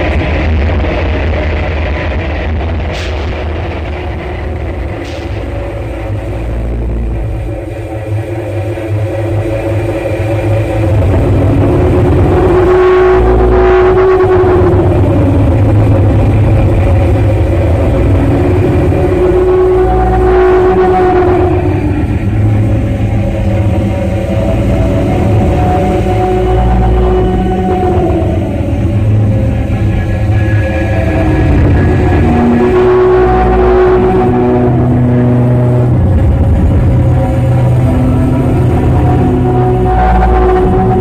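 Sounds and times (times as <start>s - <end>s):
electronic drone: 0.0s - 41.0s
low rumble: 0.0s - 41.0s.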